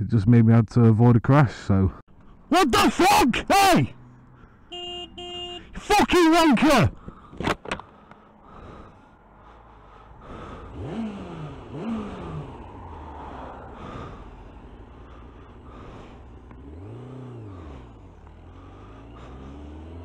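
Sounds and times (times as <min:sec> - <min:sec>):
wind and road noise: 0:00.0 - 0:20.0
motorcycle engine revving: 0:07.0 - 0:20.0.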